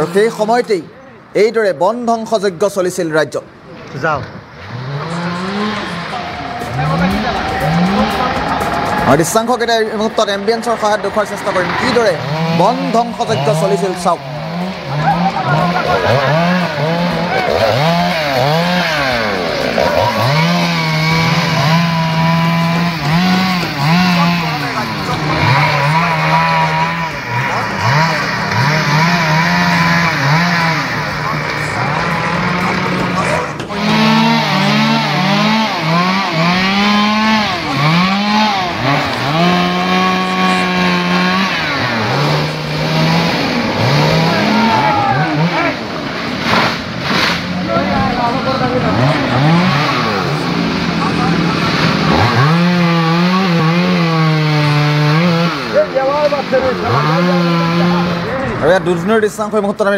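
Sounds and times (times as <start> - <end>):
chainsaw revving: 0.0 - 1.5, 4.0 - 59.9.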